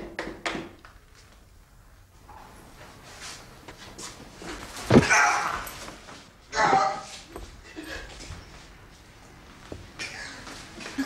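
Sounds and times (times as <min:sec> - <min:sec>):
scuffling: 0:02.8 - 0:11.0
man yelping in pain: 0:05.0 - 0:05.7.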